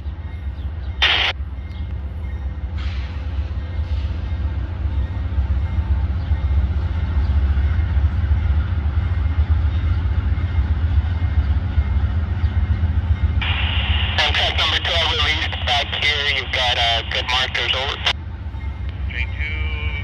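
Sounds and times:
diesel locomotive rumbling: 0.0s - 20.0s
scanner radio hiss: 1.0s - 1.3s, 13.4s - 18.1s
person talking over radio: 13.4s - 18.2s, 19.1s - 20.0s.

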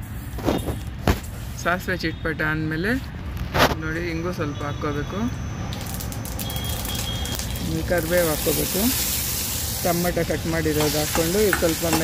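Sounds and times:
seeds sizzling in hot oil: 5.7s - 12.0s.

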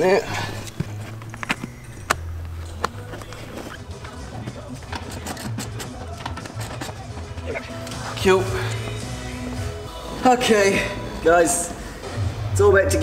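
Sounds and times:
background music: 0.0s - 13.0s
rustling: 0.3s - 8.2s.

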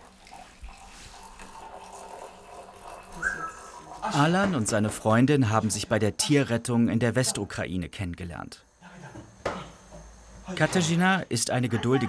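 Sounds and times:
water pouring into mug: 0.0s - 4.1s.

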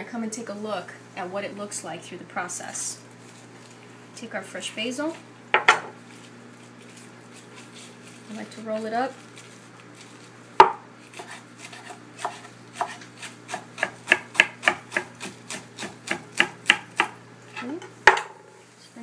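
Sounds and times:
knife slicing on cutting board: 11.1s - 13.9s.

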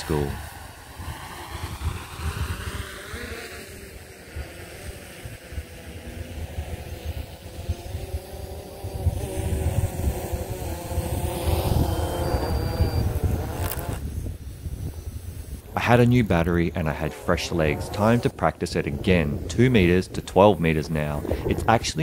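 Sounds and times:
drone propellers buzzing: 0.0s - 22.0s
wind gusts on microphone: 0.0s - 22.0s.

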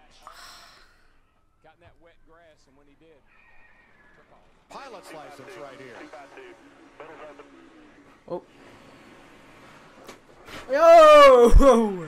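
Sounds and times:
man speaking faintly: 4.2s - 8.5s
man exclaiming oh: 10.7s - 12.0s.

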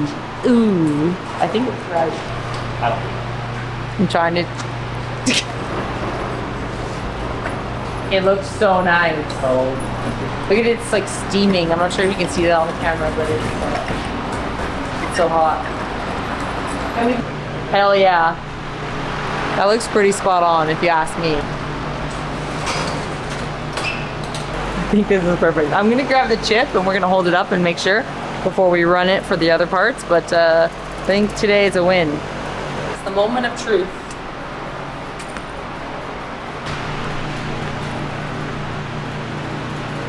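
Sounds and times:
fan air rushing: 0.0s - 40.0s
low motor hum: 0.0s - 40.0s.

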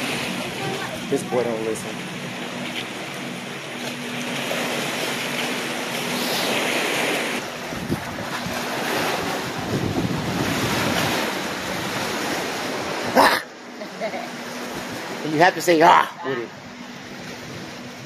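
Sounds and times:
waves breaking among rocks: 0.0s - 13.5s
wind buffeting microphone: 7.4s - 13.2s, 16.5s - 18.0s.

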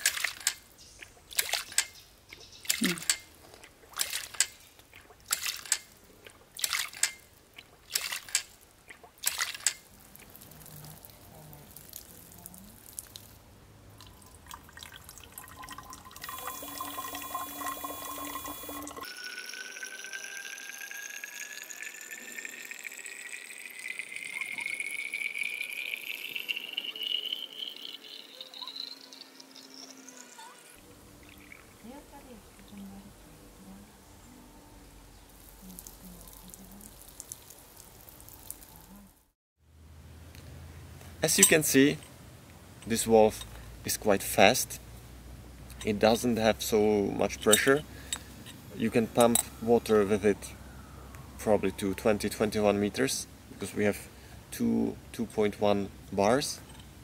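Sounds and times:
splashing water: 0.0s - 32.9s, 35.3s - 38.9s
water running into a bottle: 2.7s - 32.8s.

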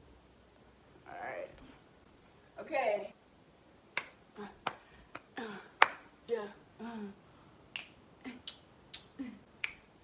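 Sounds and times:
finger snaps: 7.7s - 9.9s.

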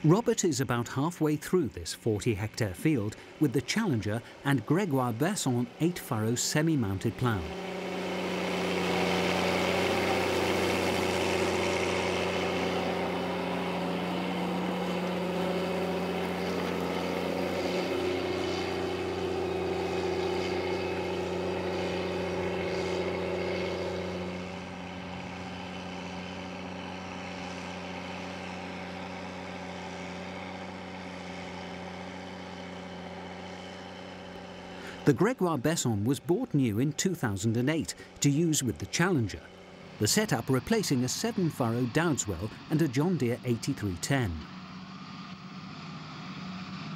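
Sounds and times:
tractor diesel engine running: 0.0s - 46.9s.

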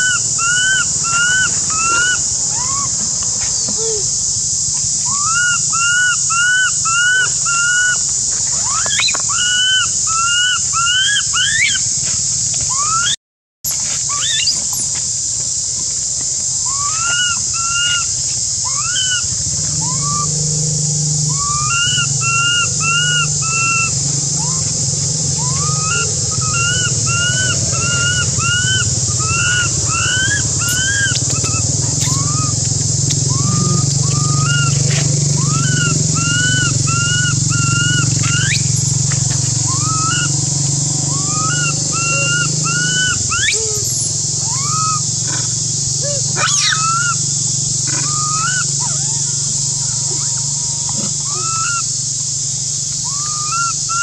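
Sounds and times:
baby monkey crying: 0.0s - 3.0s, 14.1s - 14.9s, 21.4s - 38.7s, 41.1s - 47.2s, 47.9s - 51.9s
steady high hiss: 0.0s - 54.0s
low steady hum: 19.1s - 51.4s.

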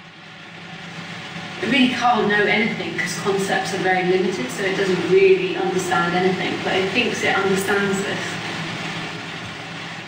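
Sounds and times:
electric fans humming: 0.0s - 10.0s.

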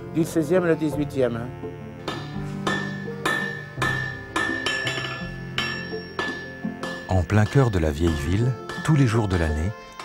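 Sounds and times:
background music: 0.0s - 10.0s
hammer striking iron on anvil: 2.0s - 10.0s.

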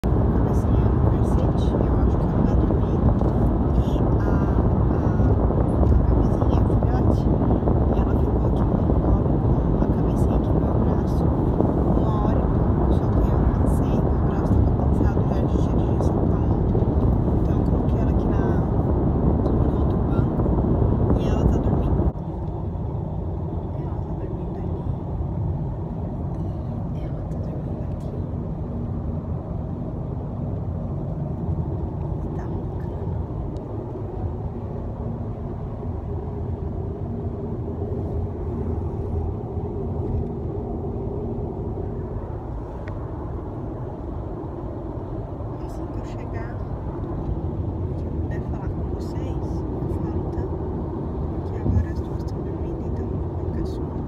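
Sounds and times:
road and wind noise in car: 0.0s - 54.0s.

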